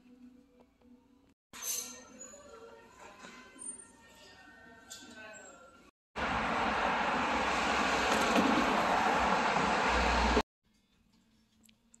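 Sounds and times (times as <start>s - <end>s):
busy road traffic: 6.2s - 10.5s.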